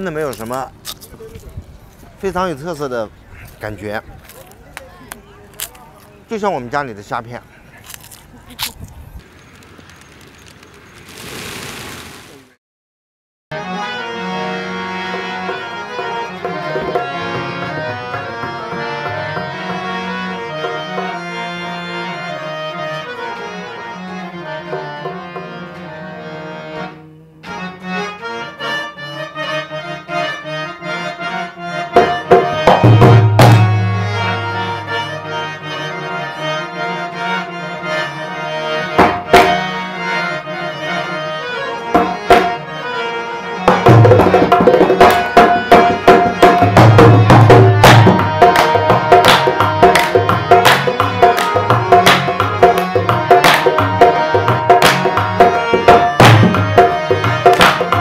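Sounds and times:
harmoniums playing reedy melody: 0.0s - 8.8s, 13.5s - 58.0s
dholak drum strokes: 32.0s - 34.3s, 43.7s - 58.0s.

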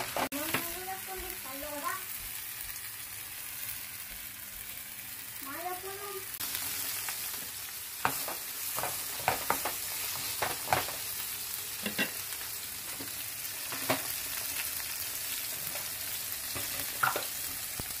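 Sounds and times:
food sizzling in a skillet: 0.0s - 18.0s
wooden spoon knocking on a pan: 8.0s - 10.9s.

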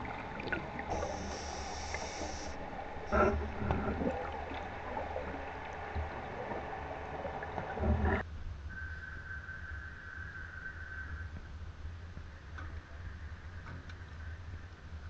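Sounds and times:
underwater sloshing: 0.0s - 8.2s.

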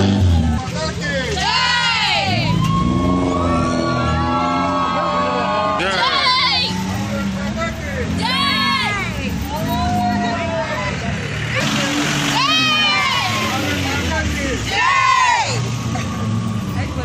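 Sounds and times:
vehicle engine running: 0.0s - 17.0s
women shouting and cheering: 1.3s - 7.0s, 8.1s - 11.1s, 12.3s - 13.8s, 14.6s - 15.7s.

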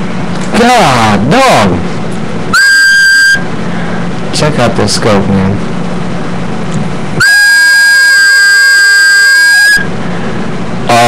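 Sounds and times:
low buzzy pitched sound: 0.0s - 4.5s, 5.5s - 11.0s
loud whistle-like tone: 2.5s - 3.5s, 7.2s - 9.9s.

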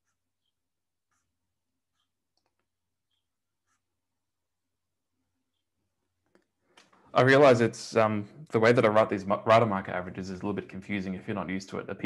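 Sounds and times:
stylus tapping and scratching on tablet: 0.0s - 7.1s.

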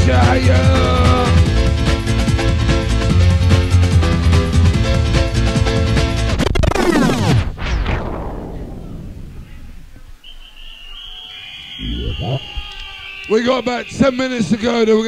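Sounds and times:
steady high tone: 11.8s - 12.7s.

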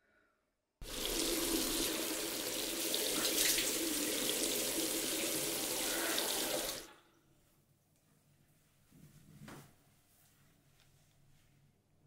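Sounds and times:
tap water running into basin: 0.8s - 6.9s.

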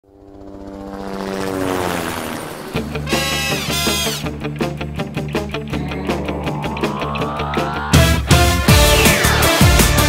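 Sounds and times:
fluttering low pulse: 5.4s - 8.8s
droning steady tones: 5.4s - 9.2s.

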